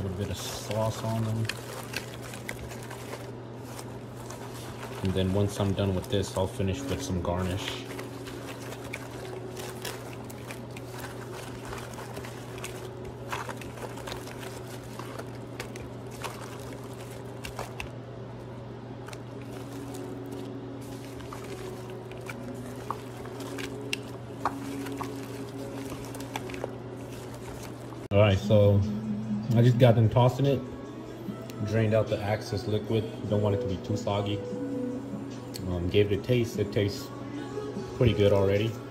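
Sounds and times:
wet squishing of food in sauce: 0.0 - 18.0, 19.0 - 28.1
steady low hum: 0.0 - 38.0.

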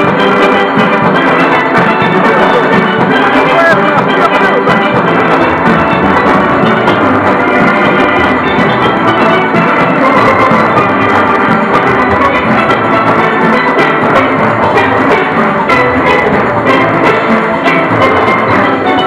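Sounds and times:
drum and percussion rhythm: 0.0 - 19.0
steelpans ringing: 0.0 - 19.0.

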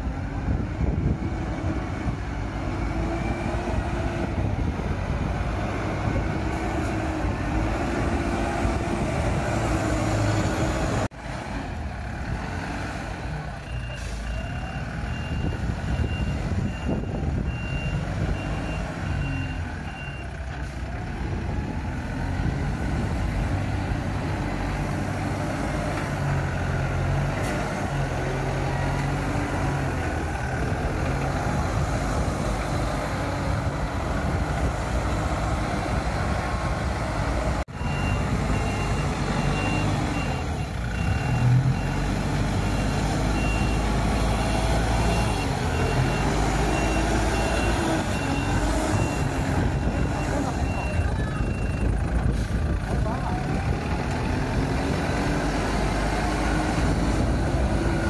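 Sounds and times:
forklift engine running: 0.0 - 58.0
reversing alarm beeps: 13.6 - 20.3, 37.8 - 52.0.

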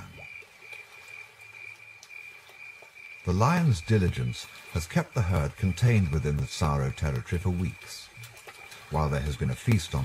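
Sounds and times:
frogs and insects chorus: 0.0 - 10.0.

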